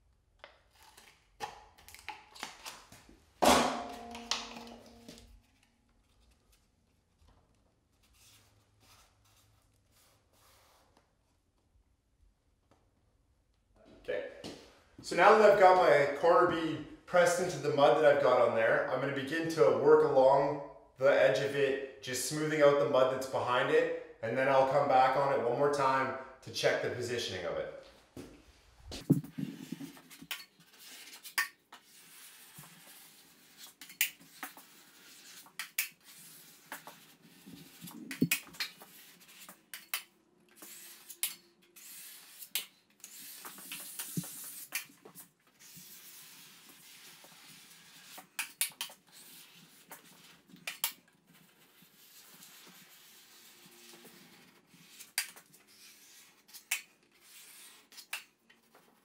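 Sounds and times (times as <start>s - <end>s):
taping knife scraping compound: 0.5s - 2.2s, 29.0s - 59.0s.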